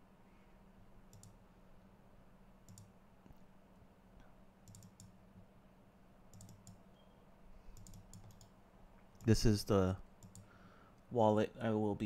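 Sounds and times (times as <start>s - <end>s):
low steady hum: 0.0s - 12.0s
faint computer clicks: 1.1s - 1.4s, 2.6s - 3.4s, 4.2s - 5.5s, 6.3s - 6.8s, 7.7s - 9.4s, 10.2s - 10.6s.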